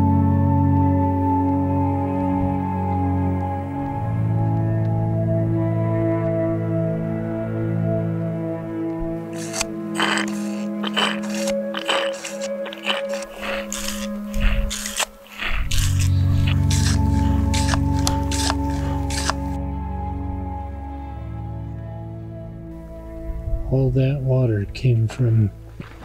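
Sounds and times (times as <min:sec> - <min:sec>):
background music sustained notes: 0:00.0 - 0:26.0
hand pump water filter scraping: 0:09.3 - 0:19.6.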